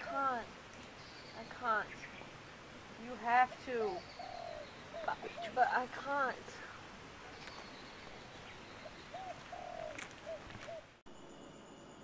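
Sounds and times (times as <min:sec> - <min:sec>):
steady background hiss: 0:00.0 - 0:12.0
bird calling: 0:03.5 - 0:06.0, 0:07.2 - 0:11.0.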